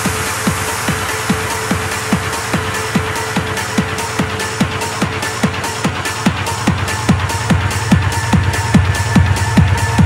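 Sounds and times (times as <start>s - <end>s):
hard techno music: 0.0s - 10.0s.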